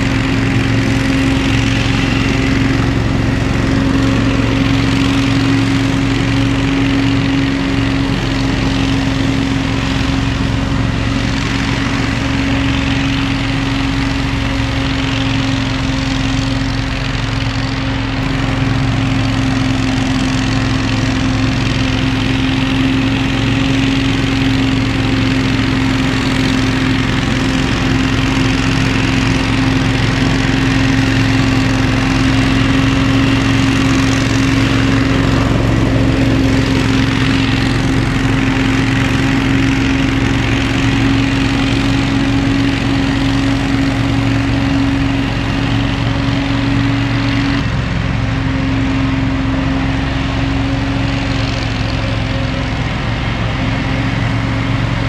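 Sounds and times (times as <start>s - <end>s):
fan whine: 0.0s - 55.0s
leaf blower engine drone: 0.0s - 55.0s.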